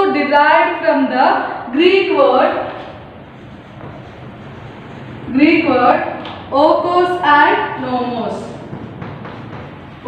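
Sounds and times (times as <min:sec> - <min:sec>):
chalk scratching on a blackboard: 0:02.8 - 0:05.4.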